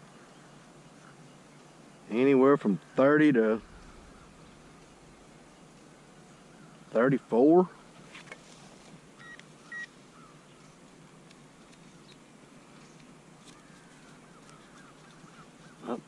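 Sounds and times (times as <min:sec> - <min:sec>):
metal detector beeps: 0:09.2 - 0:09.9.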